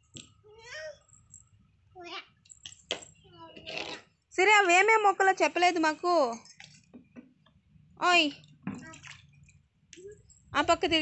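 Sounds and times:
water splashing in a tub: 0:08.6 - 0:09.8.

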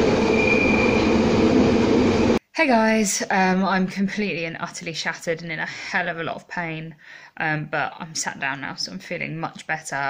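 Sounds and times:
train rumbling and rattling: 0:00.0 - 0:02.4
train wheels squealing: 0:00.2 - 0:01.3.

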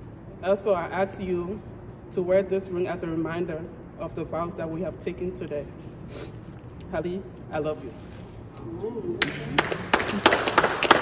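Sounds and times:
people clapping: 0:09.2 - 0:11.0.

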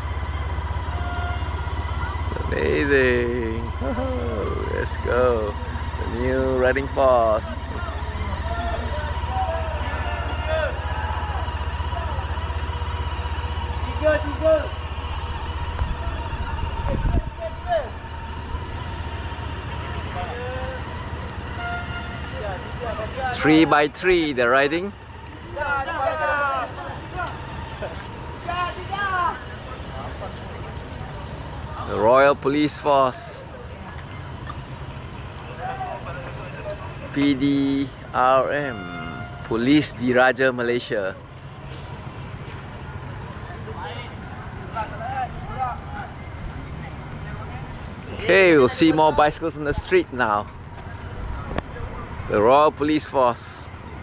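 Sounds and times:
distant voices: 0:00.0 - 0:54.0
low street rumble: 0:00.0 - 0:54.0
vehicle engine idling: 0:00.0 - 0:54.0.

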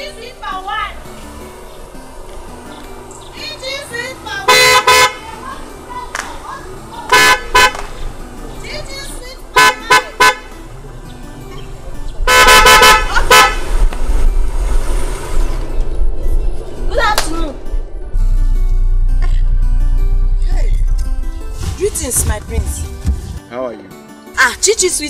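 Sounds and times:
car horn honking: 0:03.4 - 0:06.1, 0:06.8 - 0:10.7, 0:12.0 - 0:13.9.

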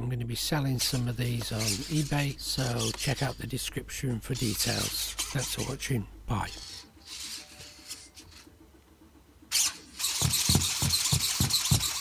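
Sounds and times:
robot leg servos whirring: 0:00.8 - 0:08.5, 0:09.5 - 0:12.0.

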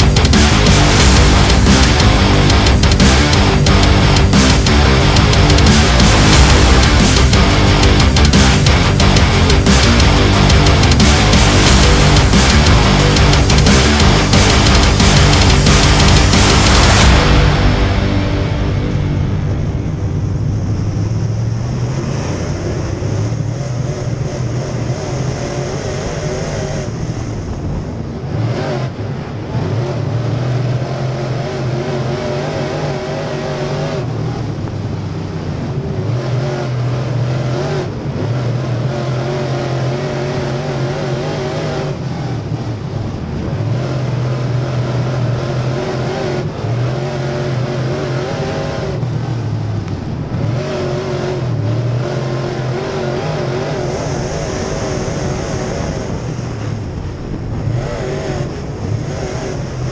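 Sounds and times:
racing engine revving: 0:00.0 - 0:59.9.

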